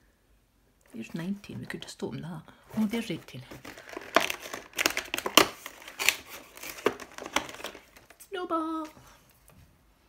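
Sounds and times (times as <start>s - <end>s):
cardboard tearing and crinkling: 2.7s - 8.2s.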